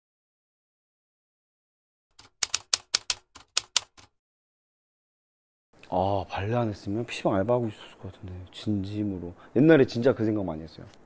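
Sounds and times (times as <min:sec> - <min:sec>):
typewriter keys clacking: 0:02.2 - 0:04.1.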